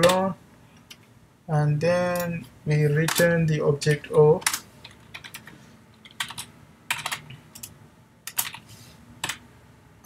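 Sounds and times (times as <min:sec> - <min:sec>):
computer keyboard keystrokes: 0:00.0 - 0:00.3, 0:03.0 - 0:03.3, 0:03.9 - 0:07.7, 0:08.3 - 0:08.6, 0:09.2 - 0:09.4.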